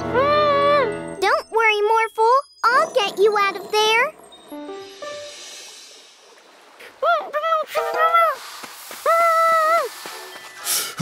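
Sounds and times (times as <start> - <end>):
soft tinkling notes: 0.8 - 5.4
light children's music: 7.7 - 8.5.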